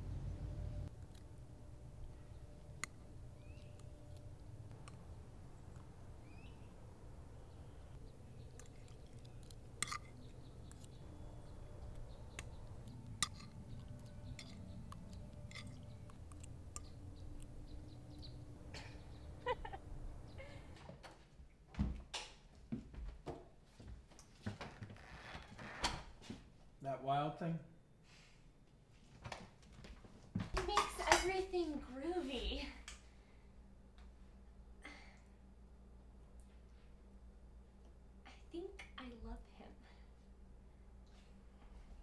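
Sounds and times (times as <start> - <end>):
steady low rumble: 0.0 - 20.8
bird chirps: 3.3 - 4.1, 6.2 - 6.8, 7.4 - 20.6.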